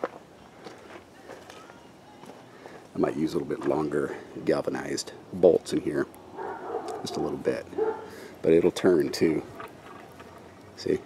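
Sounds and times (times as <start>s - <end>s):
footsteps on dry ground: 0.0s - 4.4s
light outdoor background noise: 0.0s - 11.0s.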